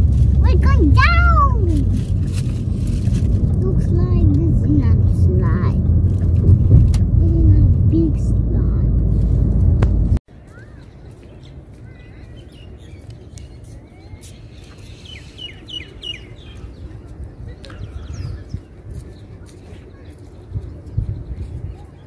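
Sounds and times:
wind buffeting microphone: 0:00.0 - 0:10.2, 0:14.5 - 0:22.0.

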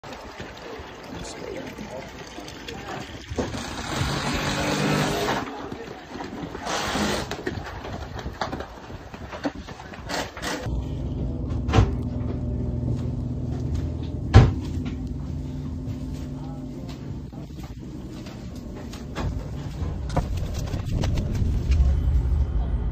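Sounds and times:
low machine hum: 0:10.7 - 0:22.9.

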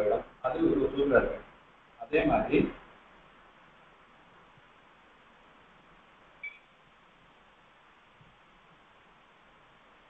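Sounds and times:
faint hiss: 0:00.0 - 0:10.0
high-pitched beep: 0:06.4 - 0:06.7.

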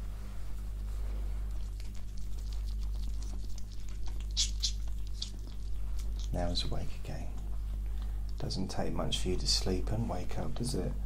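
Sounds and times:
low electrical hum: 0:00.0 - 0:11.0
pet scratching and rustling: 0:00.1 - 0:06.7.

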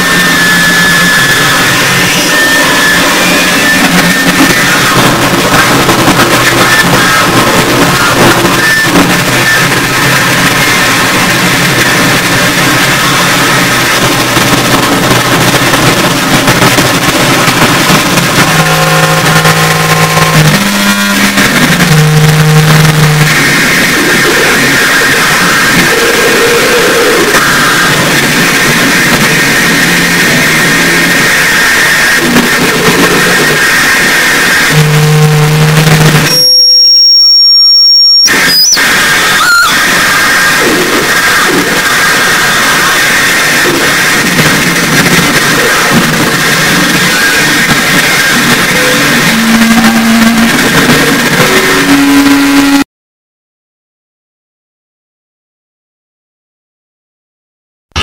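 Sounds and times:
low droning hums: 0:00.0 - 0:36.3, 0:38.3 - 0:52.8
distorted noise wall: 0:00.0 - 0:52.9
piercing high tone: 0:34.7 - 0:40.4, 0:48.3 - 0:52.8.

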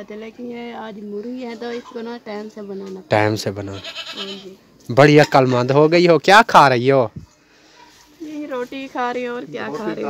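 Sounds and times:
goat or sheep bleating: 0:03.4 - 0:05.8.

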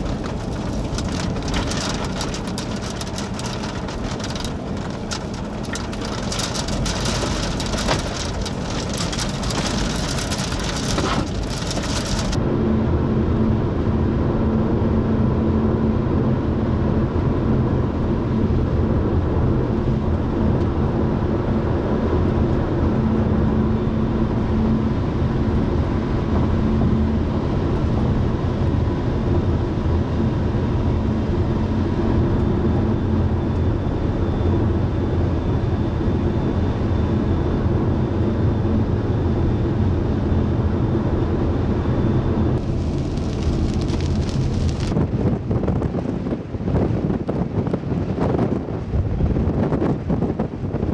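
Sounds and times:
car road noise inside cabin: 0:00.0 - 0:50.9.

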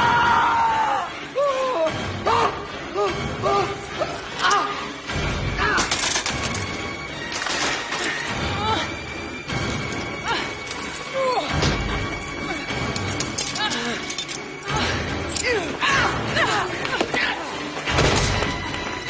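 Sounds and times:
dramatic score music: 0:00.0 - 0:19.0.

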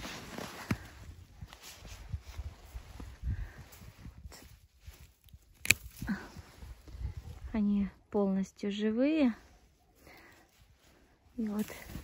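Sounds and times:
pruning shears snipping: 0:05.5 - 0:06.1
rustling and handling noise: 0:09.9 - 0:12.0.

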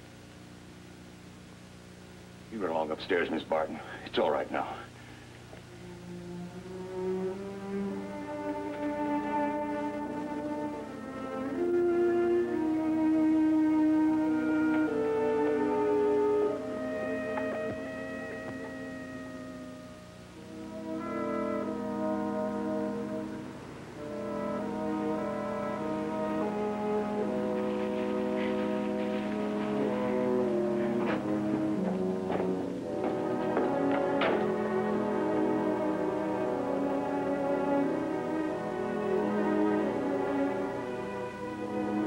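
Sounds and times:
orchestral score led by brass: 0:05.7 - 0:42.0.

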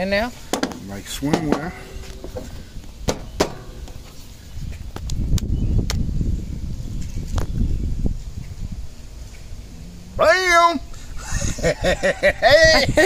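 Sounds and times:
wooden pieces knocking: 0:00.5 - 0:04.1.

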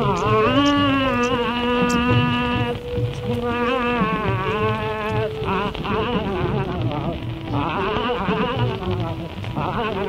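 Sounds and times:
low drum pulse: 0:00.0 - 0:10.0
person singing devotional song: 0:00.0 - 0:10.0.

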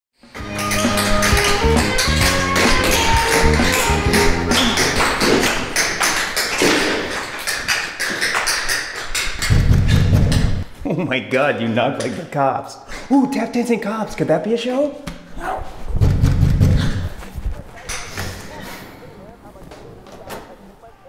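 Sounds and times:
music with bass line: 0:00.4 - 0:05.1
tap shoes clicking: 0:00.4 - 0:10.6
loud knocks on door: 0:09.4 - 0:10.6, 0:16.0 - 0:17.0.

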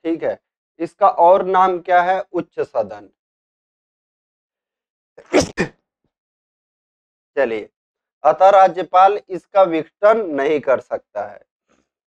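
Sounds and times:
man sneezing: 0:05.2 - 0:05.8.

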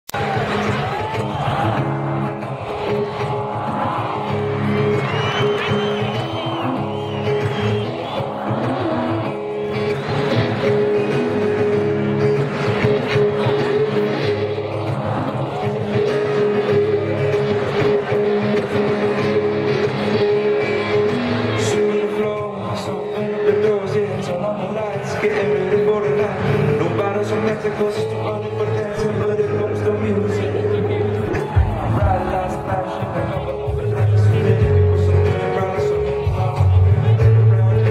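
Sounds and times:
stadium crowd: 0:00.0 - 0:37.9
live band playing: 0:00.2 - 0:37.9.

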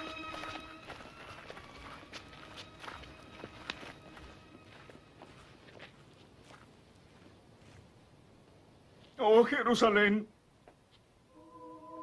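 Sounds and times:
held music note: 0:00.0 - 0:05.6, 0:11.3 - 0:12.0
footsteps on stone steps: 0:00.0 - 0:07.9.

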